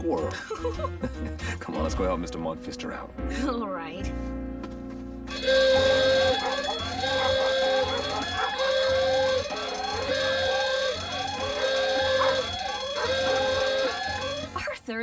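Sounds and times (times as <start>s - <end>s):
burglar alarm siren: 5.3s - 14.6s.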